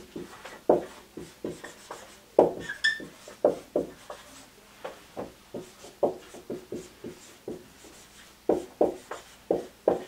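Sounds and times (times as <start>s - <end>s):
marker writing on whiteboard: 0.0s - 10.0s
marker tip squeak: 2.6s - 3.1s.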